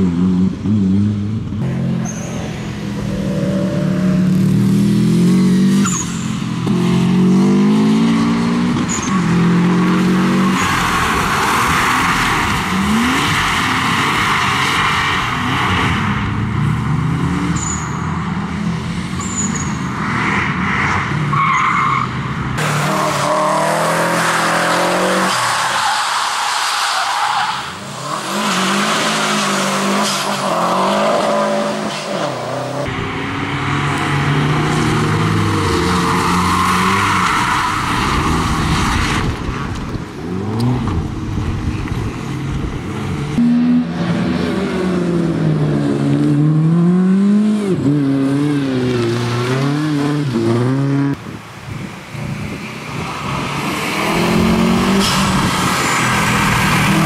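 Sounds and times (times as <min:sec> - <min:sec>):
car engine revving hard: 0:53.6 - 0:57.0.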